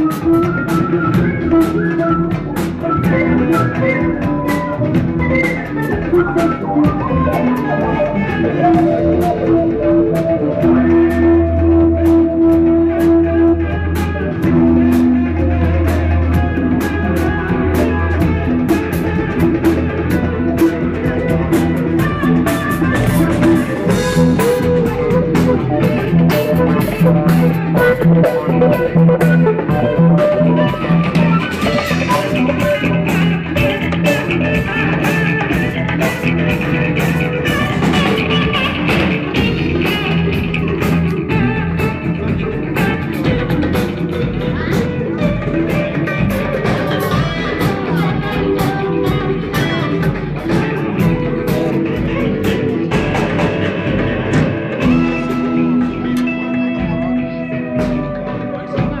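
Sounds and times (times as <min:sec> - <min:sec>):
drum kit beat: 0:00.0 - 0:59.0
electric guitar playing: 0:00.0 - 0:59.0.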